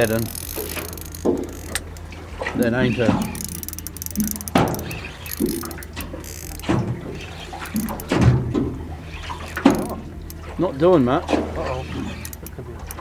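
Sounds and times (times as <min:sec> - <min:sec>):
steady low hum: 0:00.0 - 0:13.0
waves slapping boat hull: 0:00.0 - 0:13.0.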